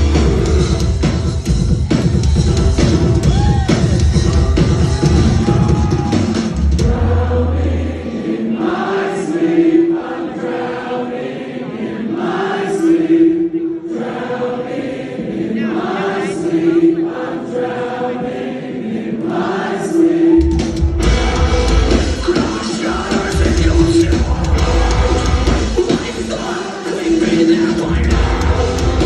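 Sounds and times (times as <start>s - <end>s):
live metal band: 0.0s - 7.5s, 20.4s - 29.0s
choir-like singing: 3.9s - 29.0s.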